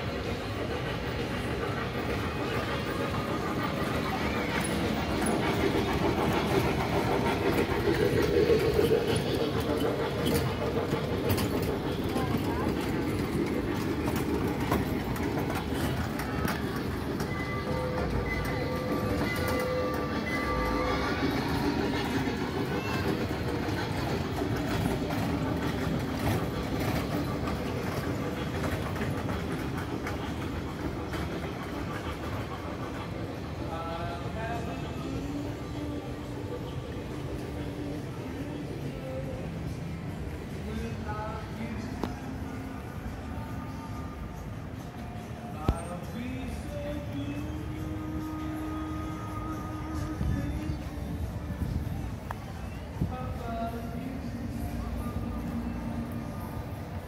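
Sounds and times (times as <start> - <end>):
small train driving past: 0.0 - 57.0
voices: 0.0 - 57.0.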